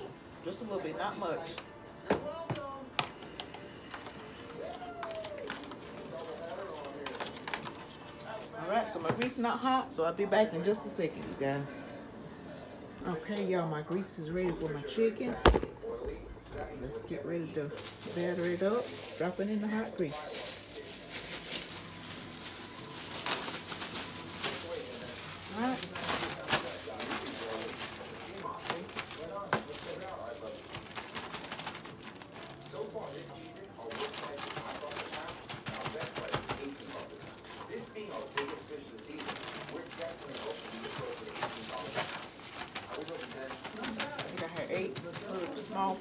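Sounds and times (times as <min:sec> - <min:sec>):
plastic bag rustling: 0:03.2 - 0:11.8, 0:13.1 - 0:46.0.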